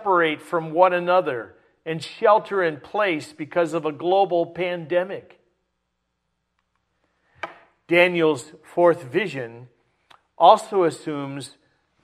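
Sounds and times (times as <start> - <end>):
man speaking: 0.0 - 5.4, 7.8 - 11.6.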